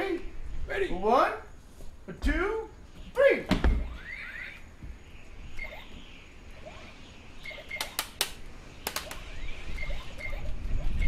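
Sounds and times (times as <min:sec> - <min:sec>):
faint bird-like chirps: 0:02.9 - 0:11.0
sharp clicks: 0:07.5 - 0:09.4.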